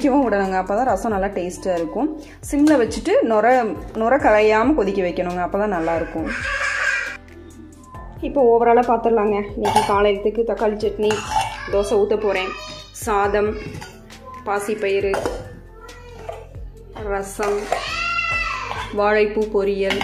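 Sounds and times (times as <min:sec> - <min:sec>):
background music: 0:00.0 - 0:20.0
metal pot lids clinking: 0:09.6 - 0:10.2, 0:10.8 - 0:12.0, 0:13.6 - 0:14.0, 0:15.1 - 0:15.6, 0:16.2 - 0:18.0, 0:18.6 - 0:20.0.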